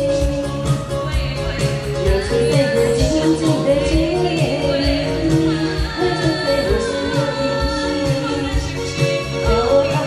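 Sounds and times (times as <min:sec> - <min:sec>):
backing music with steady beat: 0:00.0 - 0:10.0
woman singing into microphone: 0:00.0 - 0:10.0.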